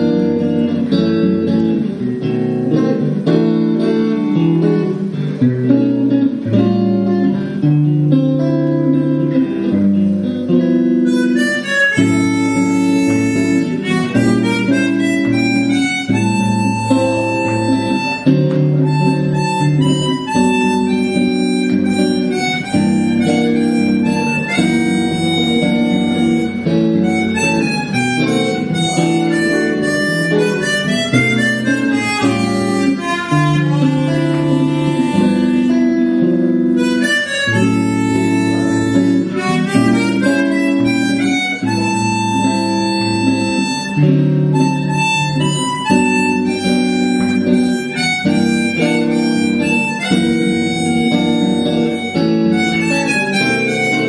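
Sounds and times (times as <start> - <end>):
guitar chords: 0.0 - 54.0
harmonica melody: 0.0 - 54.0.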